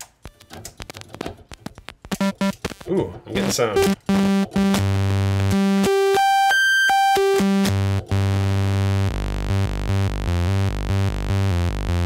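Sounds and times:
analog synthesizer notes: 0.2s - 12.0s.

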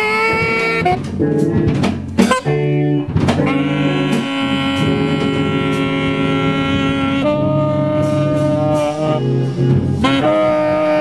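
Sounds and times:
held wind instrument note: 0.0s - 11.0s.

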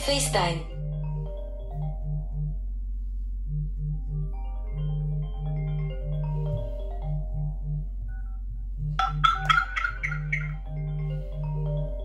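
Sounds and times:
bright chiming notes: 0.0s - 2.7s, 3.9s - 12.0s
mallet-like ringtone melody: 0.0s - 2.7s, 3.6s - 12.0s
low pulsing buzz: 0.0s - 12.0s.

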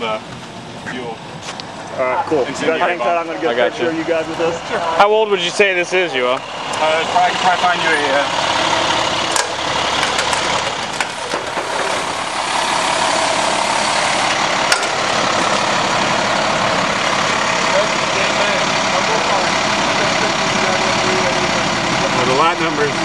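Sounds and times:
vehicle engine idling: 0.0s - 23.0s.

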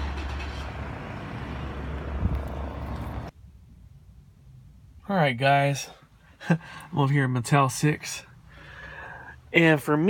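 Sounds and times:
vehicle traffic rumble: 0.0s - 10.0s.

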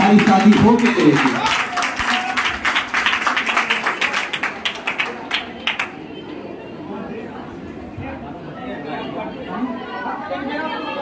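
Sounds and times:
indistinct chatter: 3.3s - 11.0s.

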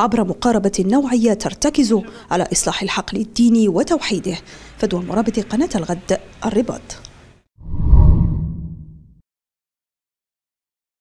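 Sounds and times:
deep whoosh: 7.6s - 9.1s.

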